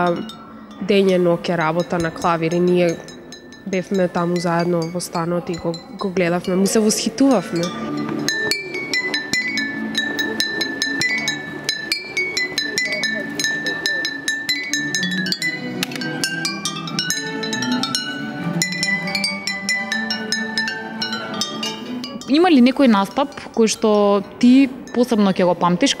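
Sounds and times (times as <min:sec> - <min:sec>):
glass bottles struck with sticks: 0:00.0 - 0:26.0.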